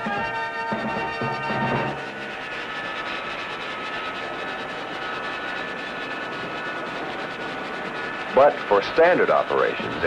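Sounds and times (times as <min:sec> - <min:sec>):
jet engines running: 0:00.0 - 0:10.0.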